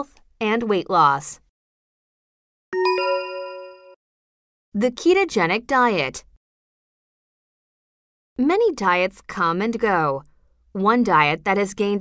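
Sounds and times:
bell-like chime: 2.8 - 4.0.

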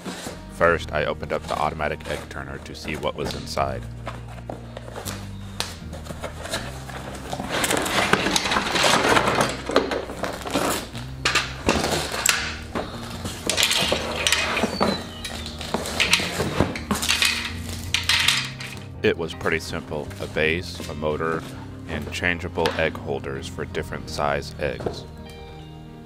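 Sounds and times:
cardboard rustling: 0.0 - 22.4
background music bass line: 0.3 - 26.0
plastic trays clattering: 0.8 - 23.0.

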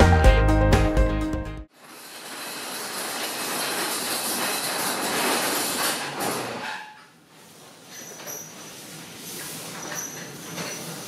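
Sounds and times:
background music: 0.0 - 1.7.

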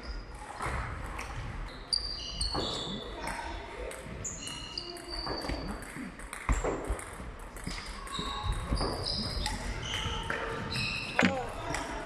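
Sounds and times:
shoe squeak on floor: 1.6 - 3.5, 4.2 - 5.9, 7.7 - 11.7.

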